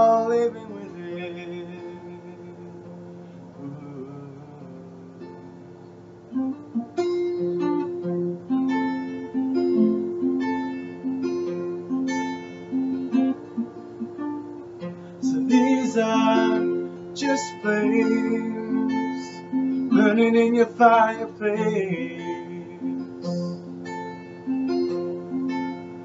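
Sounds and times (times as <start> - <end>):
acoustic guitar: 0.0 - 26.0.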